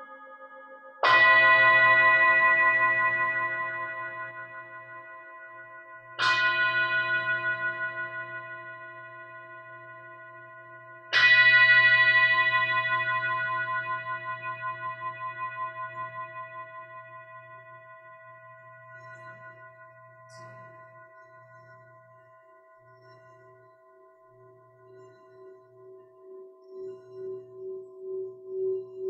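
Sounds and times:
singing bowl ringing: 0.0 - 29.0.

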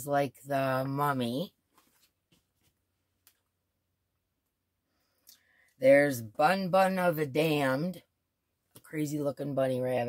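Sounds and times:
woman speaking: 0.0 - 1.5, 5.8 - 8.0, 8.8 - 10.0.

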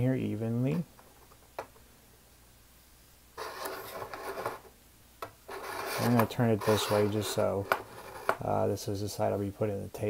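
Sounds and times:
propeller rubbing and scraping: 5.5 - 8.4.

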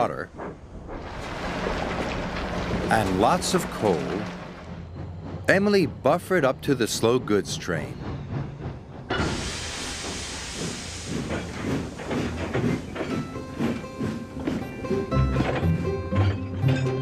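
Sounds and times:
steam engine hiss: 9.1 - 14.8
background music: 12.5 - 17.0.

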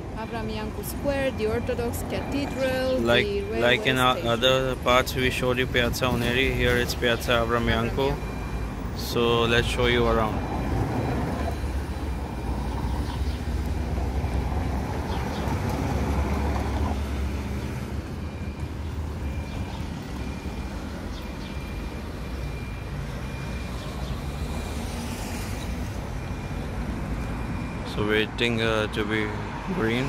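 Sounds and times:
street traffic: 0.0 - 30.0.

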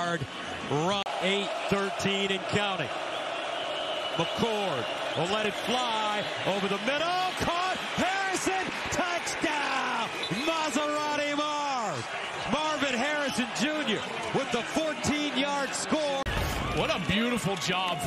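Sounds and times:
stadium crowd noise: 0.0 - 18.0
excited drawn-out voices: 0.7 - 18.0.

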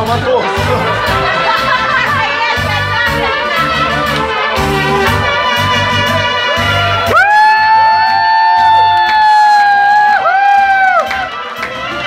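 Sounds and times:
brass trumpets holding notes: 0.3 - 7.2.

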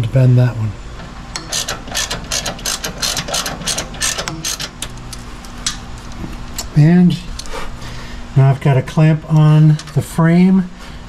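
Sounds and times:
ratchet wrench clicking: 1.4 - 5.0.

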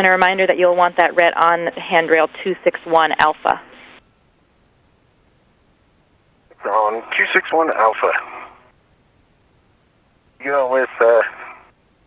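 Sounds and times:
radio transmission voice: 6.5 - 8.5, 10.4 - 11.6.

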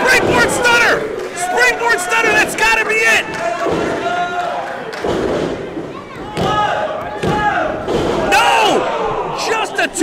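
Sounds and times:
spectators shouting: 0.0 - 4.7, 6.2 - 10.0.

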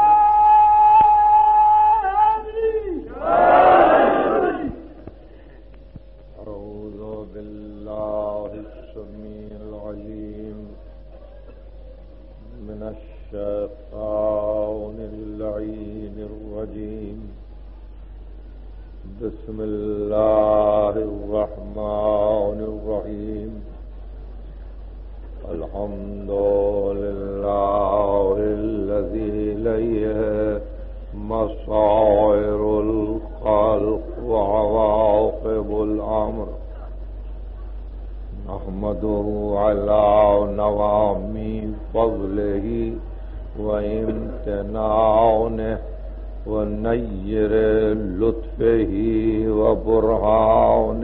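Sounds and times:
man chanting: 0.0 - 3.1, 6.4 - 11.1, 12.4 - 17.5, 19.0 - 23.8, 25.4 - 37.0, 38.3 - 51.0
mains hum: 0.0 - 51.0.

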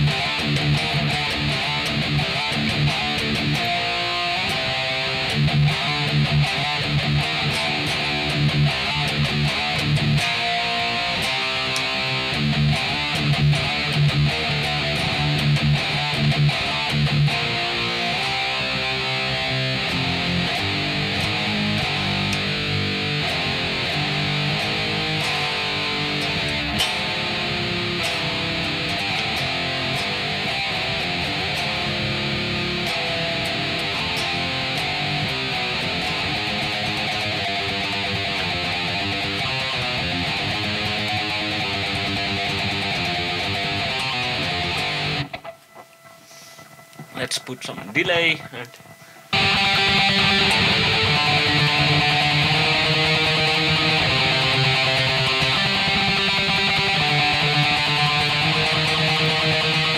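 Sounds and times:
distorted electric guitar riffs: 0.0 - 59.9.

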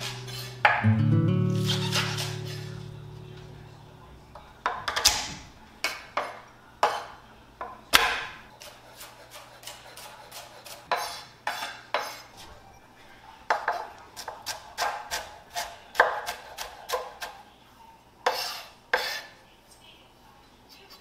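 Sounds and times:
kitchenware clattering: 0.0 - 0.9, 4.2 - 8.4
knife chopping on cutting board: 7.9 - 12.2, 13.5 - 17.4.

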